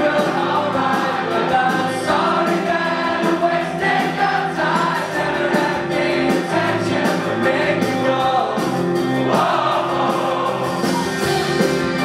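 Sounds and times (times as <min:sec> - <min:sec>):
rock band playing: 0:00.0 - 0:12.0
voices singing: 0:00.0 - 0:12.0.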